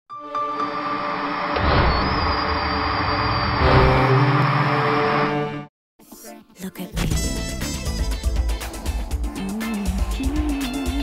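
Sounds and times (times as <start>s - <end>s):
thin high whistle: 1.8s - 4.1s.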